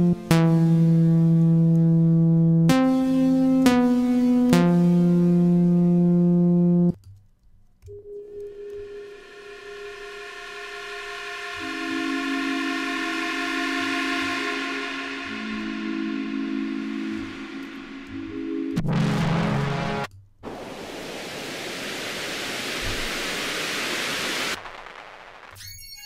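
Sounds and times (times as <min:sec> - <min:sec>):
synthesizer brass lead chord: 0:00.0 - 0:07.0, 0:09.0 - 0:20.9
airy synthesizer pad chord: 0:08.4 - 0:24.6.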